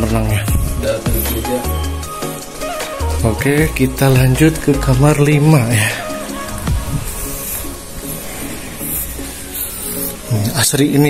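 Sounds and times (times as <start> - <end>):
music with steady beat: 0.0 - 10.6
hiss: 5.7 - 10.7.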